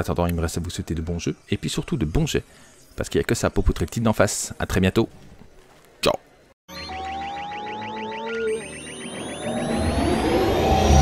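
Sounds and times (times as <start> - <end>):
rapid pulsing electronic chatter: 6.7 - 11.0
rising electronic whistles: 6.7 - 11.0.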